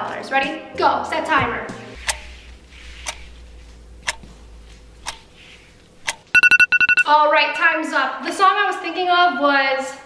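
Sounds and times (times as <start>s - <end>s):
timer ticking: 6.0s - 7.1s.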